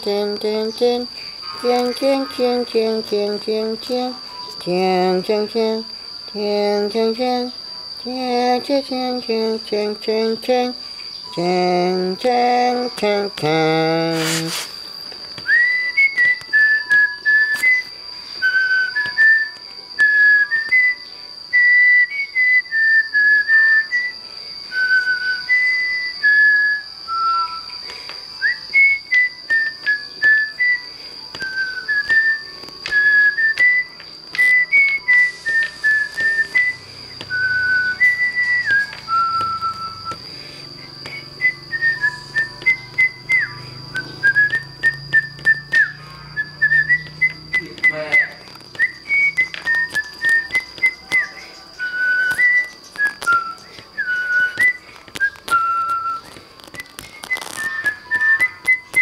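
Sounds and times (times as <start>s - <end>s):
person whistling a tune: 0.0s - 14.7s, 15.4s - 59.0s
high-pitched whine: 0.0s - 59.0s.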